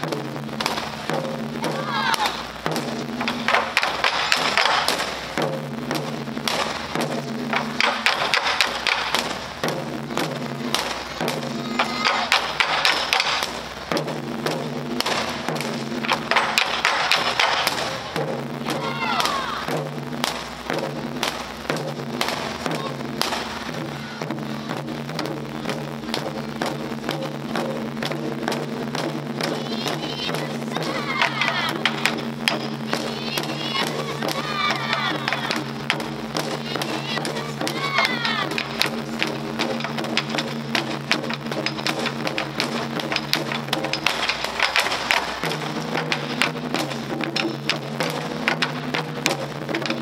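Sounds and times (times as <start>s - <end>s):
low drum tones: 0.0s - 50.0s
taiko drums struck: 0.0s - 50.0s.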